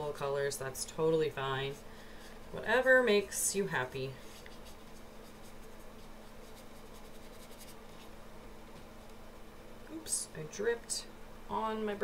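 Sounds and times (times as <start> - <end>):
steady low hum: 0.0 - 12.0
wet brush rubbing on paper: 4.2 - 8.1.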